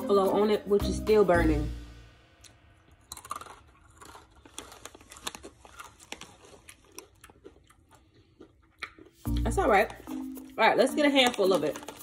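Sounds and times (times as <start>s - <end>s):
person chewing crunchy chip: 2.4s - 10.6s, 11.2s - 12.0s.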